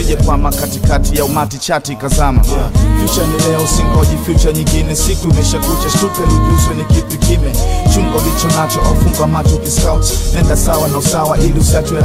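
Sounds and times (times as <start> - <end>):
drum beat with heavy bass: 0.0 - 1.4, 2.1 - 12.0
melodic singing: 0.0 - 12.0.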